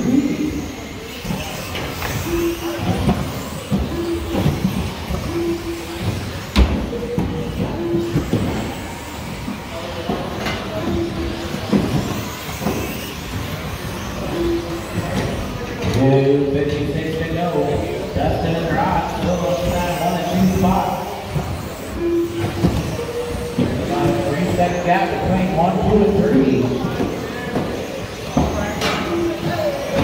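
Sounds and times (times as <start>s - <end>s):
rc car motors and tyres: 0.0s - 30.0s
short steady beeps: 22.0s - 24.3s.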